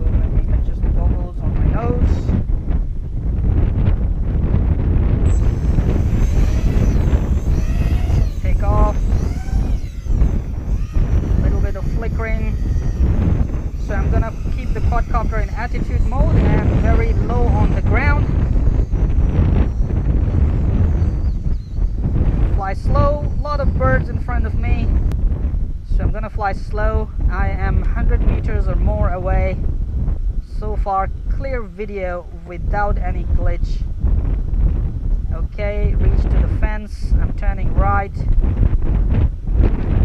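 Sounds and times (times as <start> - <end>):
wind buffeting microphone: 0.0 - 40.0
quadcopter motors whining: 3.4 - 25.6.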